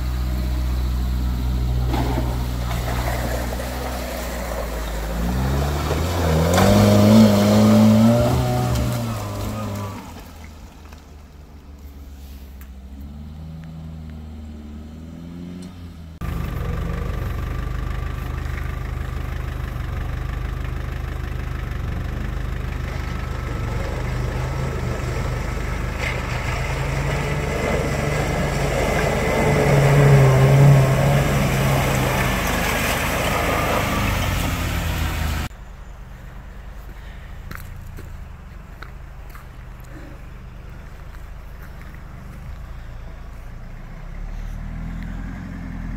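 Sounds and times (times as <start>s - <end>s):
off-road vehicle engine: 0.0s - 45.9s.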